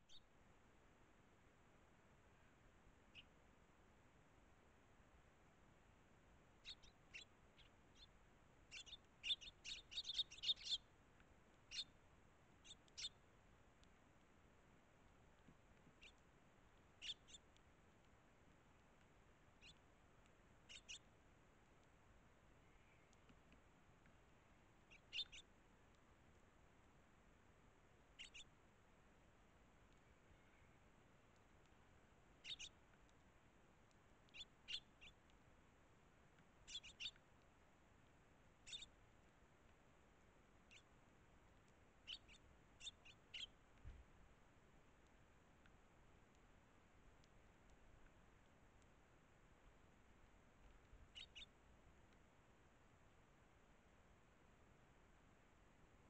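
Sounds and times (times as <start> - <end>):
sparrows chirping: 0.0 - 0.3, 6.6 - 10.9, 11.6 - 13.2, 15.8 - 16.2, 16.9 - 17.6, 19.5 - 19.9, 20.6 - 21.1, 24.8 - 25.5, 28.0 - 28.5, 32.3 - 32.8, 34.3 - 35.2, 36.6 - 37.2, 38.6 - 39.0, 40.6 - 40.9, 42.0 - 43.6, 51.0 - 51.6.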